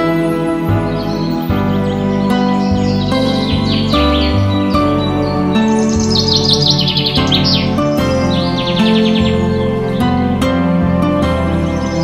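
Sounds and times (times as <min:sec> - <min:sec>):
birds chirping in trills: 0:00.0 - 0:12.0
music with sustained chords: 0:00.0 - 0:12.0.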